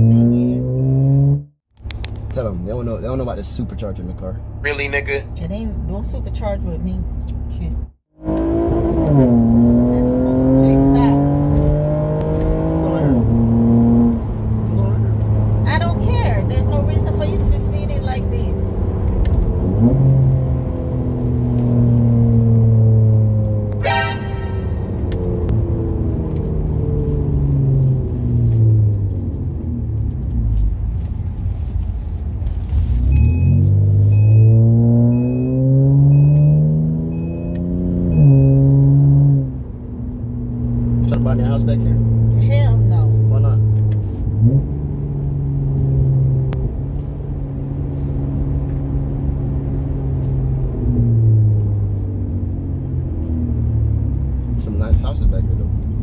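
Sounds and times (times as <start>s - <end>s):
car engine accelerating: 0.0s - 56.0s
brief high sound: 23.8s - 25.0s.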